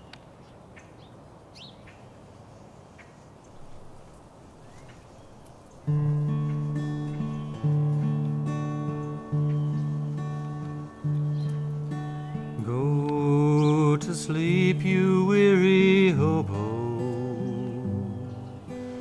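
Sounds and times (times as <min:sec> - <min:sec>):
bird chirps: 0:00.0 - 0:02.1, 0:03.0 - 0:19.0
faint outdoor ambience: 0:00.0 - 0:19.0.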